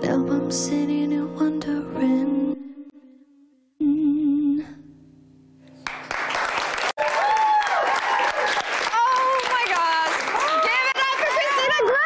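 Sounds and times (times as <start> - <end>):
audience applause and cheering: 5.8 - 12.0
high whoops: 7.0 - 9.5.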